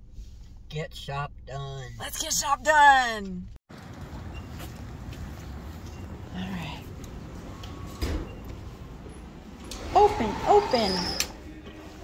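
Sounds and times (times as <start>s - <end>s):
sliding door thump: 7.5s - 8.9s.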